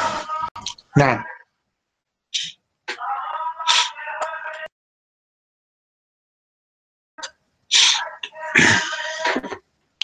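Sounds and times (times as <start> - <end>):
indistinct voiced sounds: 2.4 - 4.7, 7.2 - 9.6
hissy voice burst: 3.6 - 4.1, 7.7 - 9.6.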